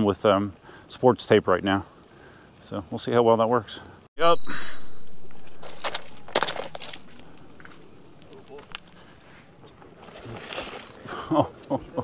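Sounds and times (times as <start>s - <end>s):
knocks and crunches on dirt trail: 5.1s - 11.2s.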